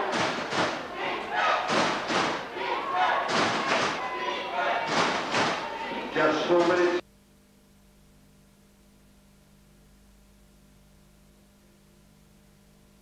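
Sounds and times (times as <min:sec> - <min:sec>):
heavy thumps: 0:00.0 - 0:00.9, 0:01.6 - 0:02.5, 0:03.1 - 0:04.1, 0:04.8 - 0:05.7
voices chanting rhythmically: 0:00.0 - 0:07.0.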